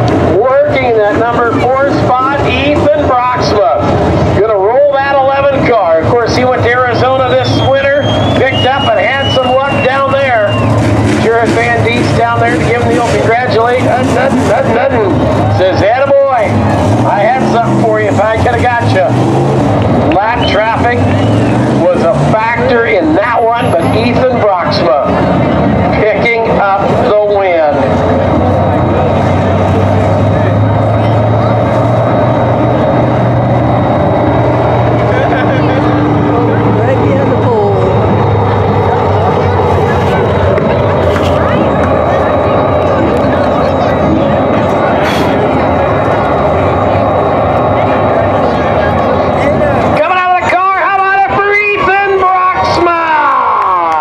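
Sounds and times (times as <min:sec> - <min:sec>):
crowd babble: 0:00.0 - 0:54.0
race car engines: 0:00.0 - 0:54.0
announcer over public address: 0:00.2 - 0:32.0, 0:35.1 - 0:54.0
low hum: 0:24.2 - 0:52.2.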